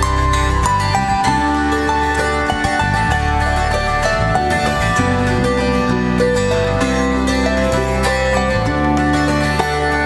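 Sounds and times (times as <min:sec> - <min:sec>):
harp being plucked: 0:00.0 - 0:10.0.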